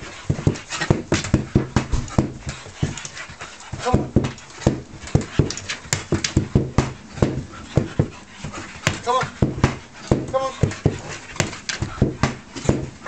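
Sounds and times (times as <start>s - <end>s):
dog panting hard: 0.0s - 13.0s
paws thumping on wooden boards: 0.0s - 13.0s.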